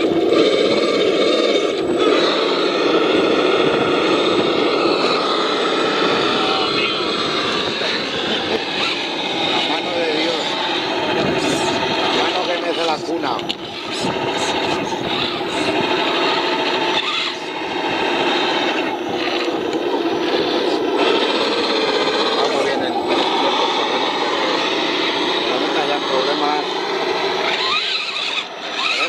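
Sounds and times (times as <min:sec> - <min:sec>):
electric motor whine: 0:00.0 - 0:29.0.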